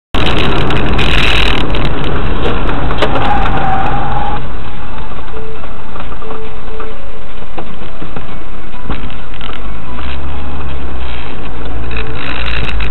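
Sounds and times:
car road and engine noise: 0.1 - 12.9
vehicles crashing: 0.2 - 6.4.

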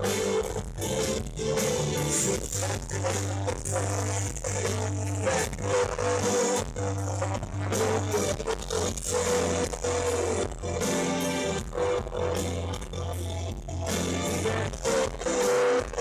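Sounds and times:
bass notes: 0.0 - 16.0
electric and acoustic guitars: 0.0 - 16.0
keyboards: 0.0 - 16.0.

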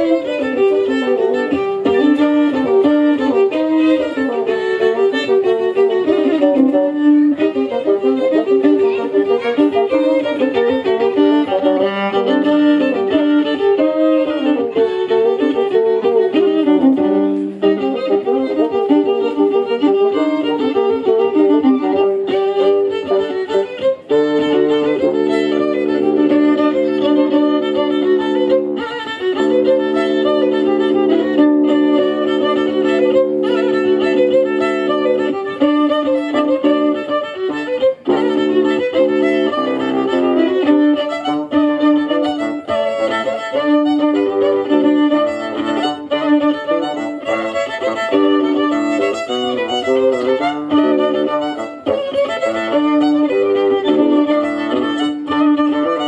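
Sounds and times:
fiddle playing folk dance tune: 0.0 - 56.0.

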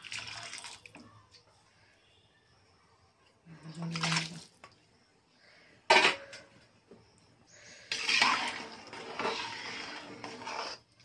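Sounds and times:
ladle stirring in metal pot: 7.7 - 11.0.

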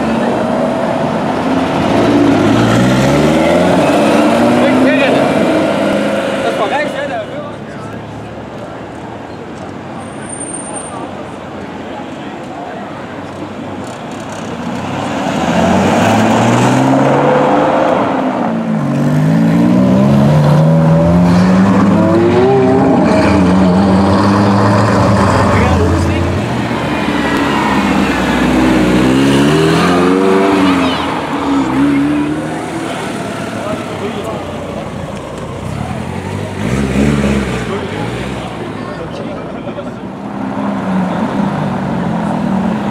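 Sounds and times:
sports car engines revving: 0.0 - 9.9, 13.1 - 42.9.

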